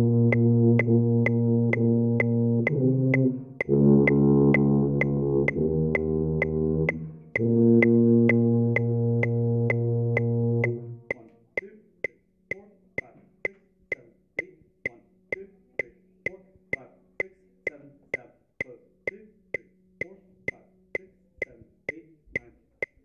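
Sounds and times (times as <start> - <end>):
sousaphone low held note: 0.0 - 11.1
metronome clicking: 0.0 - 23.0.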